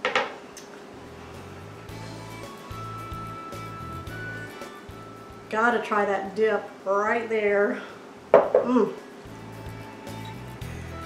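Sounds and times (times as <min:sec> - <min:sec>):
soft background music: 0:00.9 - 0:06.5, 0:09.2 - 0:11.0.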